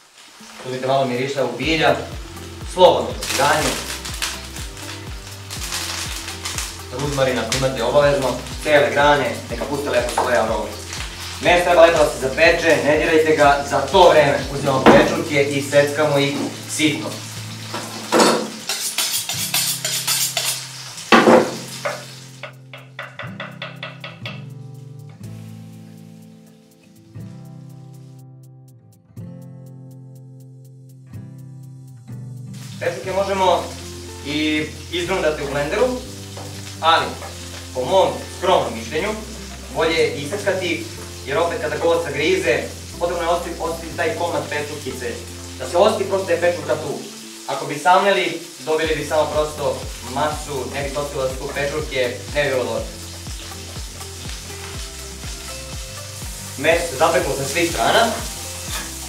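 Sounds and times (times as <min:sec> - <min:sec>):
meat sizzling in a frying pan: 0:00.0 - 0:28.2, 0:31.7 - 0:59.0
background music with low beat: 0:01.6 - 0:18.7, 0:21.0 - 0:46.4, 0:48.5 - 0:59.0.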